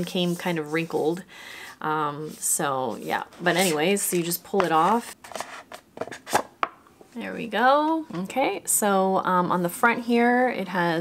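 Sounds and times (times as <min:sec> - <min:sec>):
cardboard sleeve scraping: 0:03.1 - 0:06.5.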